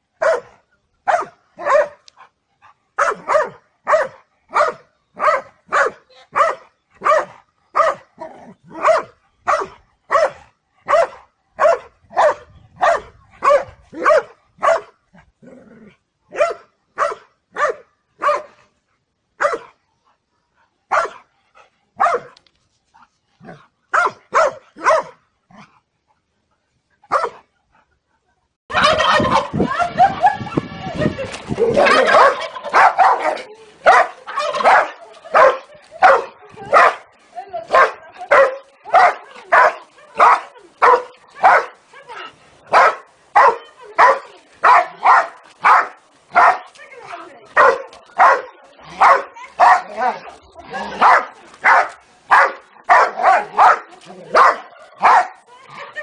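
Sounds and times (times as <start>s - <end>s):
dog barking: 0.2s - 2.0s, 3.0s - 8.1s, 8.8s - 14.9s, 16.3s - 18.6s, 19.4s - 19.7s, 20.9s - 21.2s, 22.0s - 22.4s, 23.9s - 25.2s, 27.1s - 27.4s, 31.9s - 37.0s, 37.7s - 41.8s, 42.7s - 46.7s, 47.6s - 50.0s, 51.0s - 55.4s
chicken squawking: 28.7s - 30.6s, 31.5s - 33.2s, 34.1s - 34.9s.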